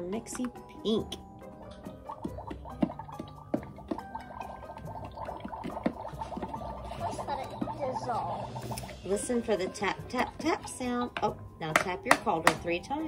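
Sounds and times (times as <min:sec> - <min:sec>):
warbling electronic toy effects: 0:06.0 - 0:09.4.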